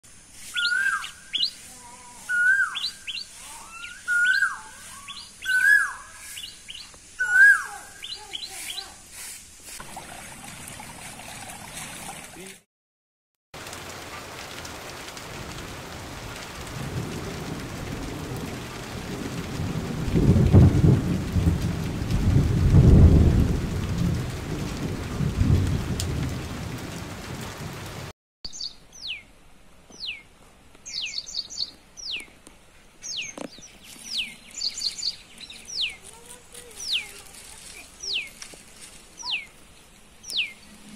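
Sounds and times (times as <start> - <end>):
steady rain: 0.0 - 11.2, 13.6 - 40.9
bird call: 0.4 - 8.9, 39.2 - 39.6
bird chirps: 0.5 - 8.9, 28.5 - 29.3, 29.9 - 30.2, 30.9 - 32.3, 33.0 - 36.2, 36.8 - 37.2, 37.8 - 40.9
thunder rumbling: 14.6 - 28.1.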